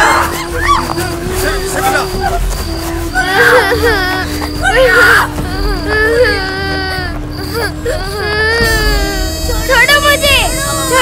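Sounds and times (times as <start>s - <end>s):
background music drone: 0.0s - 11.0s
woman crying and wailing: 0.0s - 11.0s.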